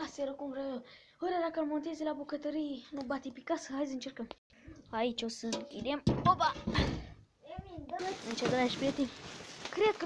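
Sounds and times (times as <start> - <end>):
rustling handling noise: 7.9 - 10.0.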